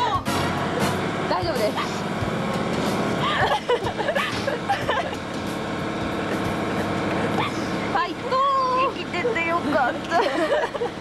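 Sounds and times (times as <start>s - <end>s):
amusement ride mechanical noise: 0.0s - 11.0s.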